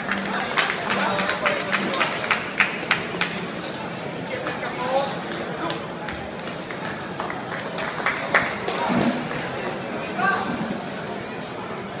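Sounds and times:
crowd chatter in a large hall: 0:00.0 - 0:12.0.

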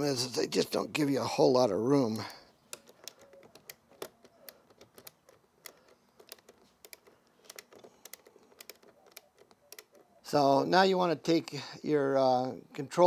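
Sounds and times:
ratcheting screwdriver clicking: 0:02.7 - 0:10.1.

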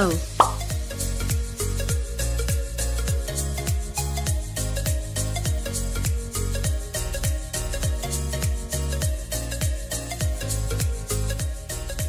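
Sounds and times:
background music with steady beat: 0:00.0 - 0:12.0
falling plop sound effect: 0:00.4 - 0:00.6.

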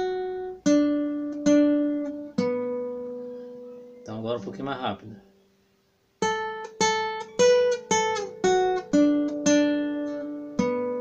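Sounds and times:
classical guitar notes: 0:00.0 - 0:05.4, 0:06.2 - 0:11.0.

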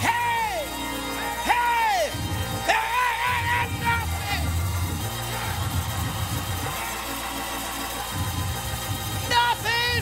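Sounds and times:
church organ chords: 0:00.0 - 0:10.0
congregation murmur: 0:00.0 - 0:10.0.

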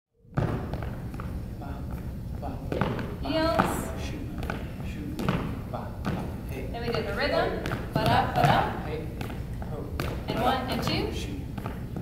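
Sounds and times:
shoes stepping on hardwood floor: 0:00.4 - 0:12.0.

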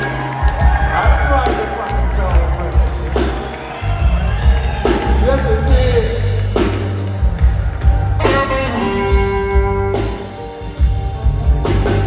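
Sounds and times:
bass and drums: 0:00.0 - 0:12.0
electric guitar solo: 0:08.2 - 0:10.7.

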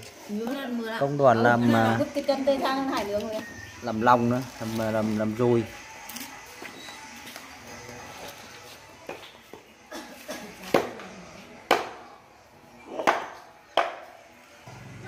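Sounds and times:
cleaver chopping on wooden board: 0:11.7 - 0:12.0.

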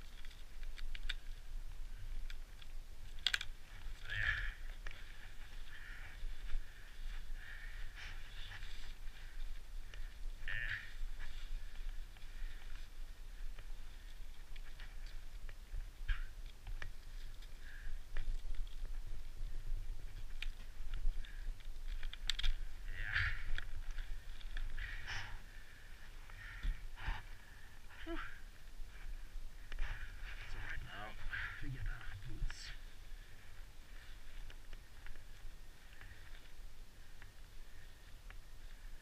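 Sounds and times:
ski boot buckles clicking: 0:02.2 - 0:05.8, 0:20.1 - 0:22.7.

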